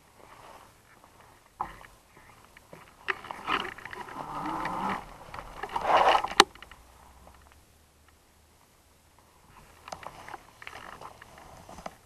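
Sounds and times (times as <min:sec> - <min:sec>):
sharp clicks and knocks: 0:01.6 - 0:08.2.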